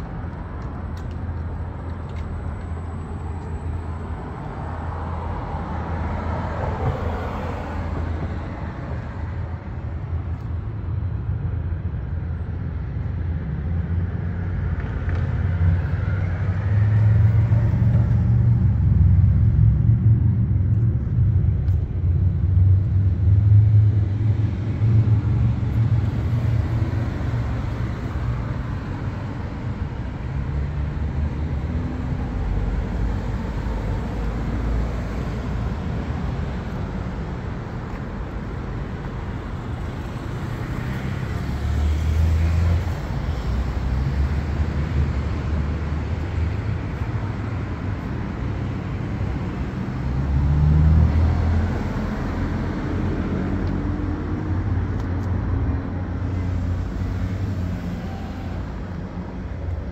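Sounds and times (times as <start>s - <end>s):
road traffic rumble: 0.0s - 59.9s.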